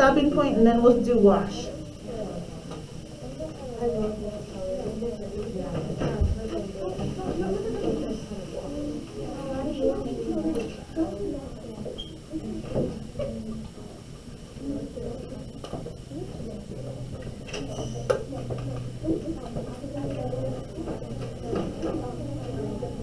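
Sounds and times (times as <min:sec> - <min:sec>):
low steady hum: 0:00.0 - 0:23.0
people chattering: 0:00.0 - 0:23.0.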